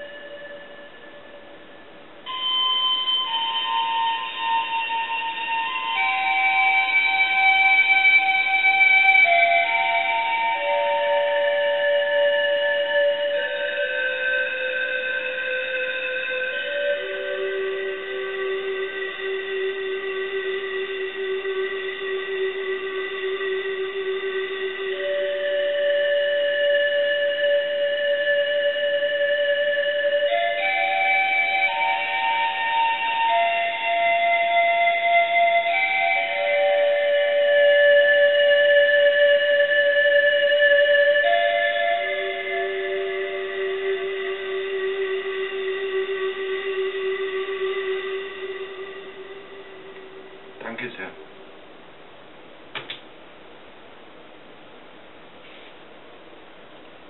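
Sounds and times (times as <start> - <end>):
synth panflute held notes: 0.0 - 51.4.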